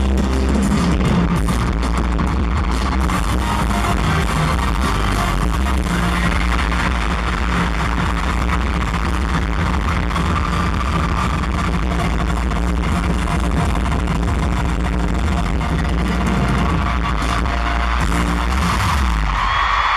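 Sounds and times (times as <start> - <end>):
loud electronic music: 0.0 - 19.9.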